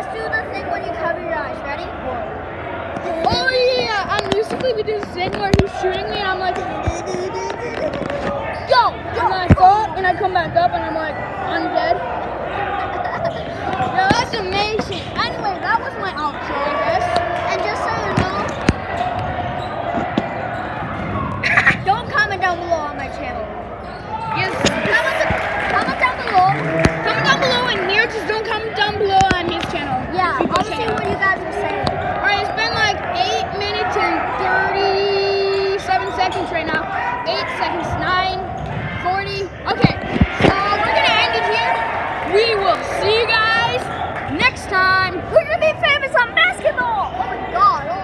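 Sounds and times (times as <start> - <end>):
voices and chatter: 0.0 - 48.0
people talking: 3.0 - 12.0, 12.8 - 18.8, 21.4 - 23.5, 24.3 - 48.0
basketball bouncing on court floor: 17.9 - 21.1.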